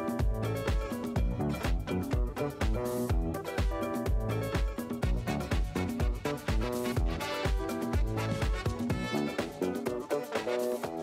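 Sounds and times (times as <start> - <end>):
steady kick drum: 0.0 - 9.6
electronic dance music: 0.0 - 11.0.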